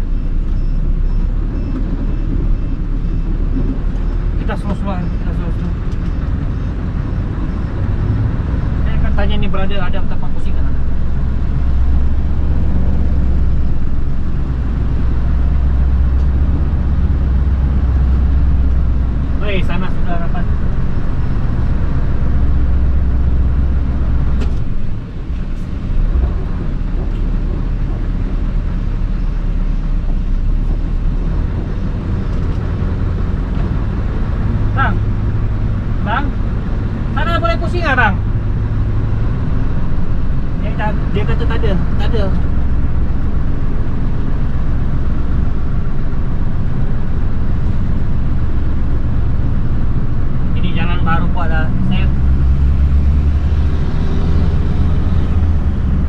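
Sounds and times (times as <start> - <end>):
lorry diesel engine running: 0.0 - 56.0
road noise: 0.0 - 56.0.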